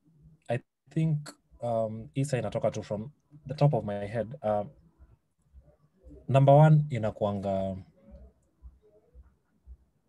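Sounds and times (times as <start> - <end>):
faint low room noise: 0.0 - 10.0
man speaking: 0.4 - 4.8, 6.1 - 8.0.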